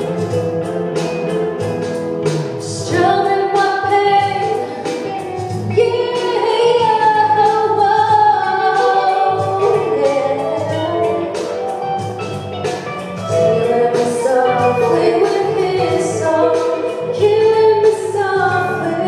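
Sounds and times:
instrumental backing music: 0:00.0 - 0:19.0
woman singing into a microphone: 0:02.6 - 0:11.5, 0:13.2 - 0:19.0.

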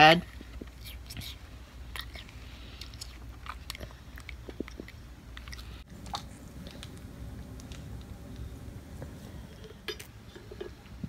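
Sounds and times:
child chewing crunchy apple: 0:00.3 - 0:11.0
wet mouth clicks: 0:02.0 - 0:06.8.

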